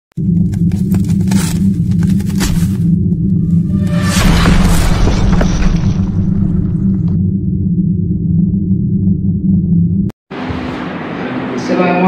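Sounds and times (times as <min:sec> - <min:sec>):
steady low drone: 0:00.2 - 0:10.1
ice block shattering boom: 0:03.9 - 0:07.2.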